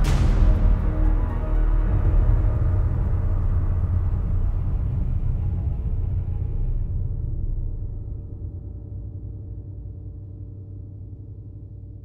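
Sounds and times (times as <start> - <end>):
deep low rumble: 0.0 - 12.0.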